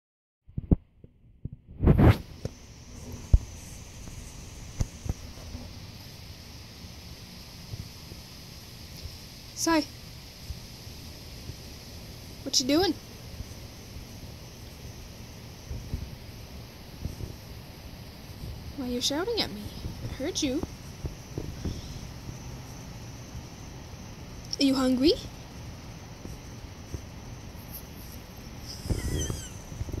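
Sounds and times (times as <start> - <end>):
rush of noise from swinging phone: 1.4 - 5.7
thumps and rustling: 19.8 - 22.0
dog yip-whine: 28.6 - 29.6.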